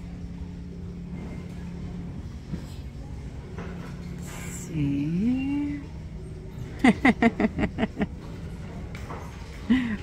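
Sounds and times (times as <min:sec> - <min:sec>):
store background hum: 0:00.0 - 0:10.0.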